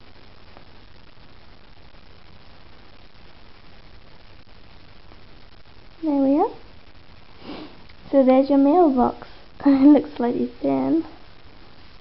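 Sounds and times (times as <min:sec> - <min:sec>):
sniff: 0:07.4 - 0:07.9.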